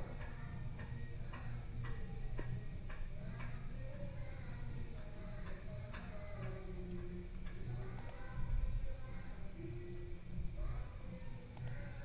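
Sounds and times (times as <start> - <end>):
low steady hum: 0.0 - 12.0
steady ticking: 0.0 - 12.0.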